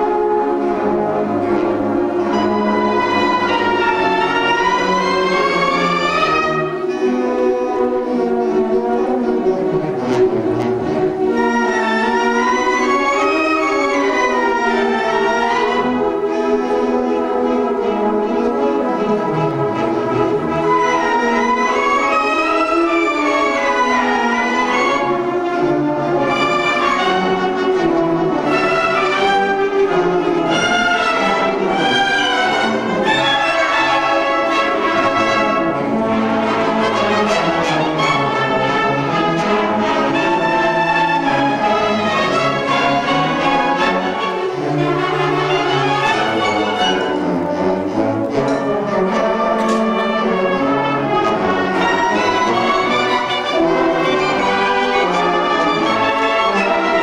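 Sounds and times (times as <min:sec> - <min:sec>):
concert band playing: 0:00.1 - 0:05.0.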